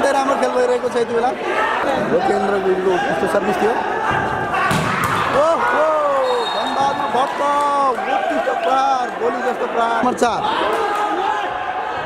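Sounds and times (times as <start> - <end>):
volleyball struck hard: 4.7 - 5.4.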